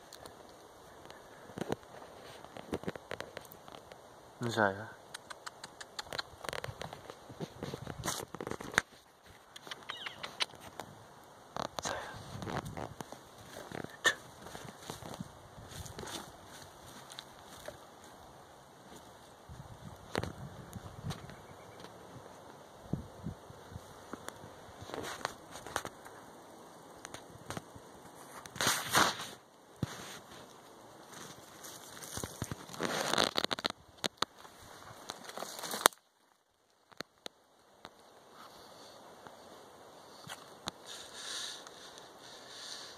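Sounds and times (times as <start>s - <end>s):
animal scratching in wood and soil: 5.2s - 10.9s, 27.0s - 36.1s, 40.0s - 42.9s.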